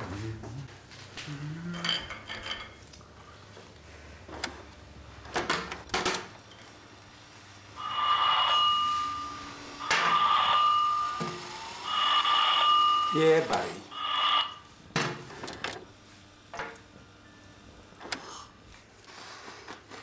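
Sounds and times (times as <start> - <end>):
mobile phone ringtone: 7.8 - 14.6.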